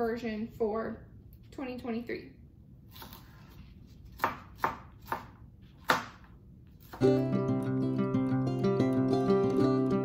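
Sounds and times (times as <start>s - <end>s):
knife chopping on cutting board: 4.1s - 6.3s.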